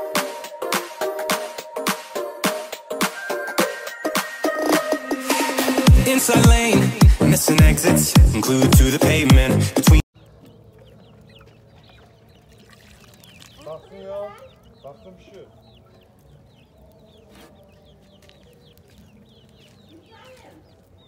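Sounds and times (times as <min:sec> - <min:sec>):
chickens clucking: 0:10.2 - 0:21.0.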